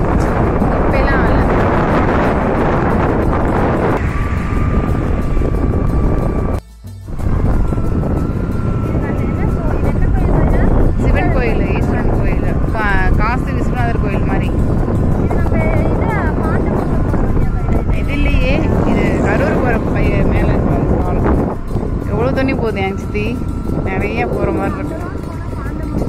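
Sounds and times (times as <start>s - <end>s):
wind and vehicle rumble: 0.0s - 26.0s.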